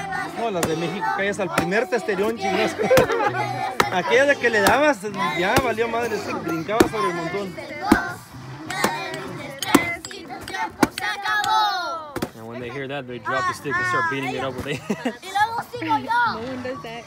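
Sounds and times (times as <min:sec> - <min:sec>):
children's voices and chatter: 0:00.0 - 0:17.0
stick hitting pinata: 0:00.5 - 0:01.8, 0:02.8 - 0:03.2, 0:03.8 - 0:04.9, 0:07.8 - 0:08.1, 0:08.7 - 0:12.4.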